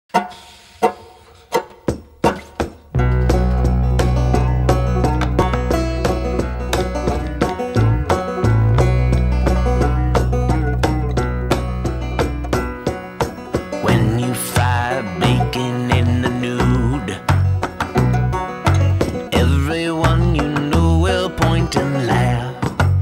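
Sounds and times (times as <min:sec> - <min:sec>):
banjo-led folk music: 0:00.1 - 0:23.0.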